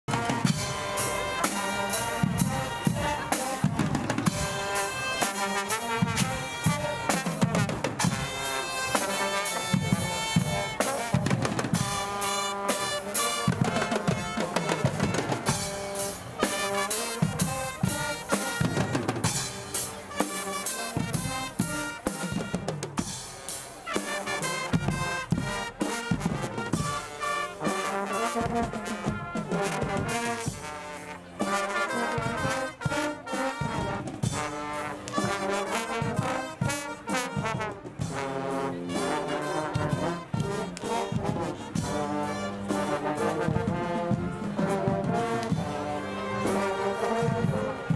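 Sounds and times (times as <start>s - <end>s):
brass band playing: 0.0s - 47.9s
marching drums and cymbals: 0.0s - 47.9s.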